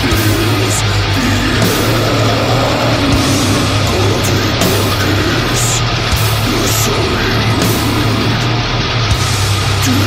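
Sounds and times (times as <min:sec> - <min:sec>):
distorted metal music: 0:00.0 - 0:10.0.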